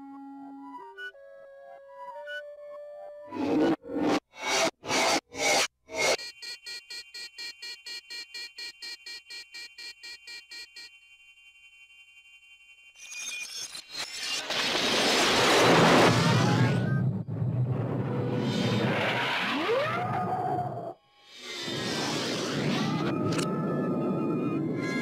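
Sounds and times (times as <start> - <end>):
rising whistle: 22.8 - 25.0.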